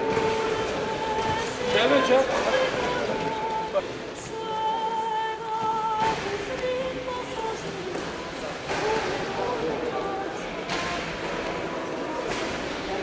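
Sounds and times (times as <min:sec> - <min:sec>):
voices murmuring in a hall: 0:00.0 - 0:13.0.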